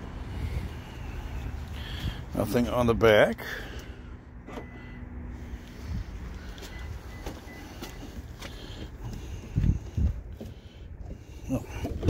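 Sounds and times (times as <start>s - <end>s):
low outdoor rumble: 0.0s - 12.0s
faint footsteps: 5.6s - 11.2s.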